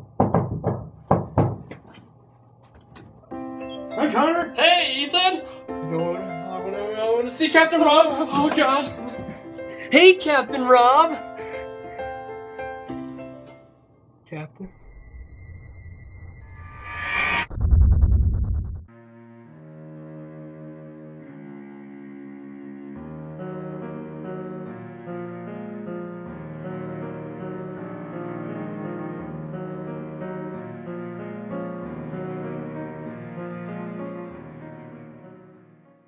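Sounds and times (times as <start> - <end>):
knocks on wooden door: 0.0 - 1.9.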